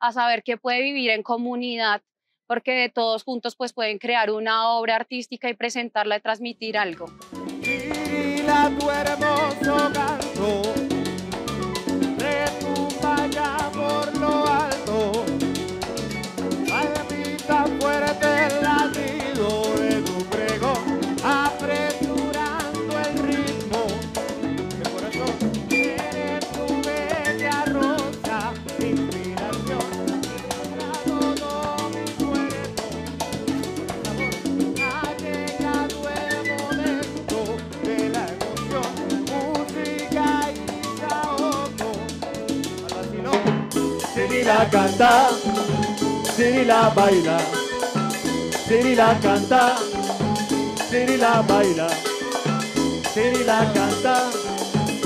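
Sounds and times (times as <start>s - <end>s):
congas: 6.6s - 55.0s
keyboard: 7.0s - 55.0s
electric bass: 7.1s - 54.1s
violin: 7.3s - 43.3s.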